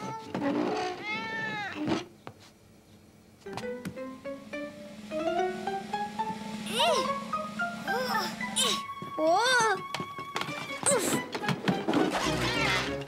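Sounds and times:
plucked string cartoon music: 0:03.4 - 0:13.0
swooping sound effect: 0:03.6 - 0:09.3.

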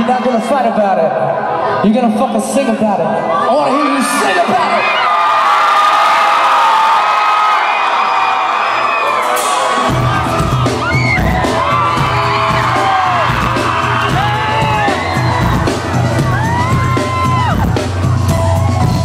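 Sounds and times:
rock band bass and drums: 0:09.2 - 0:19.0.

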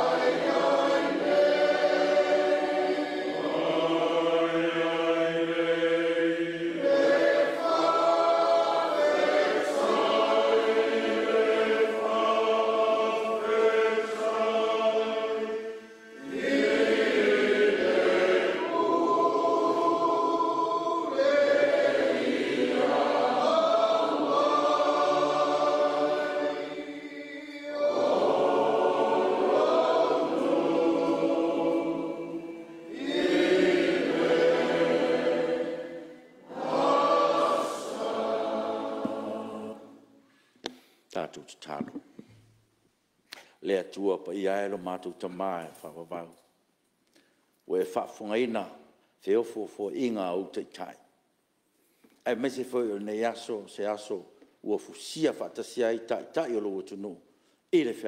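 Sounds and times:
choir singing held chords: 0:00.0 - 0:40.4.

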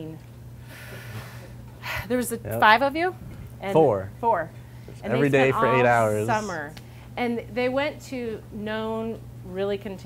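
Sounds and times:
low room hum: 0:00.0 - 0:10.0
woman's in-breath: 0:00.6 - 0:02.1
woman talking: 0:02.0 - 0:10.0.

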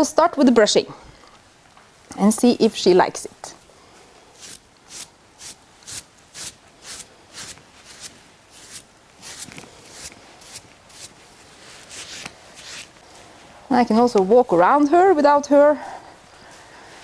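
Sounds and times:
brush swishing over horse coat: 0:04.4 - 0:13.6.

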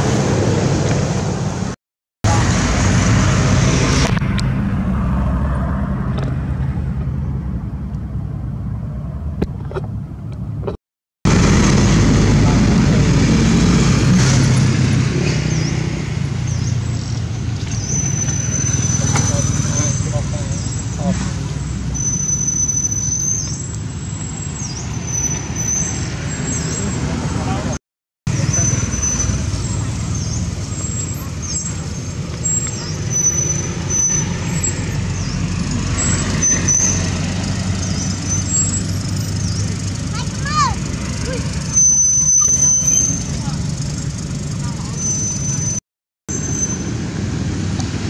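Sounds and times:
short squeaky calls: 0:17.7 - 0:21.2, 0:21.9 - 0:23.7, 0:24.3 - 0:27.0, 0:28.4 - 0:35.4, 0:36.0 - 0:37.1, 0:41.7 - 0:43.4.

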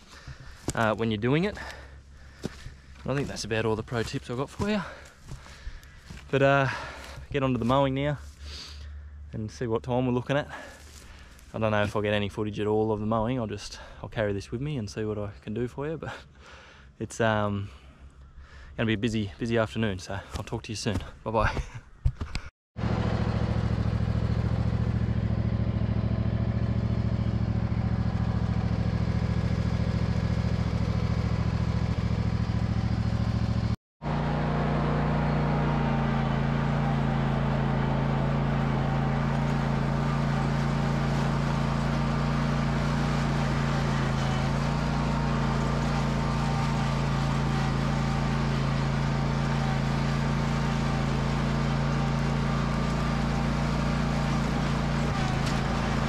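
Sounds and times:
mower engine droning: 0:00.0 - 0:09.6, 0:10.2 - 0:12.4, 0:22.8 - 0:56.0.

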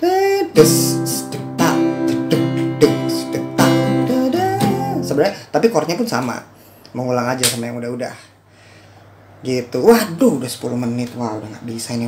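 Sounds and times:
acoustic guitar strummed slowly: 0:00.5 - 0:05.2.

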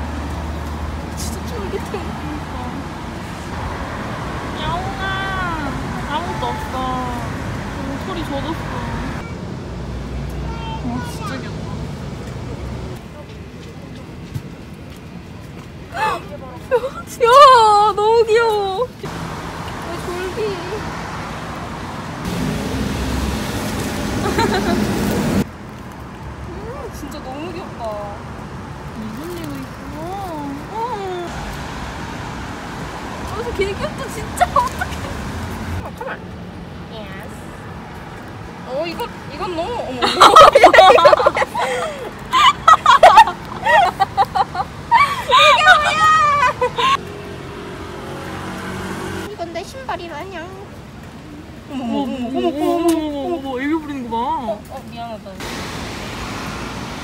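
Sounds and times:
road traffic: 0:00.0 - 0:57.0
vehicle low rumble: 0:18.8 - 0:45.0.

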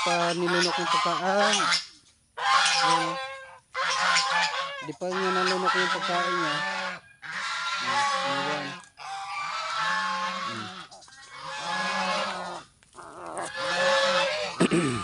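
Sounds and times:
crow calling: 0:00.0 - 0:14.7.

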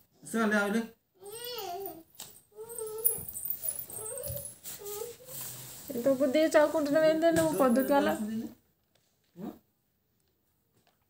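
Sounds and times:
child making wordless sounds: 0:01.2 - 0:02.0.

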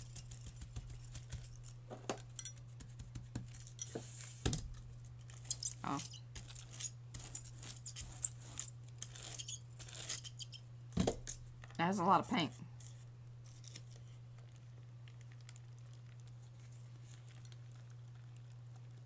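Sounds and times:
metal bracelets clinking: 0:00.0 - 0:02.7, 0:04.7 - 0:11.4
low steady hum: 0:00.0 - 0:19.0.

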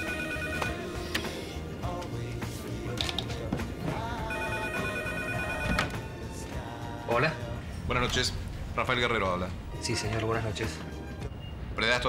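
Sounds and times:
telephone ringing: 0:00.0 - 0:01.0, 0:04.2 - 0:06.0
background music: 0:00.0 - 0:12.0.

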